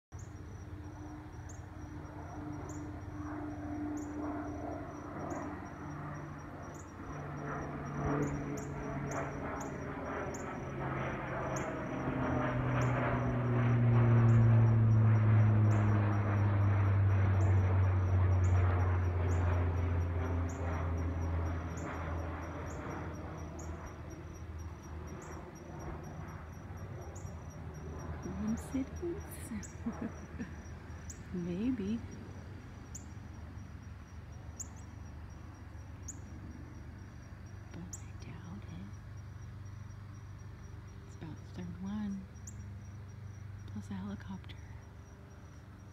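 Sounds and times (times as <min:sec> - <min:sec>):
airplane engines droning overhead: 0:00.1 - 0:45.9
steady low rumble: 0:00.1 - 0:45.9.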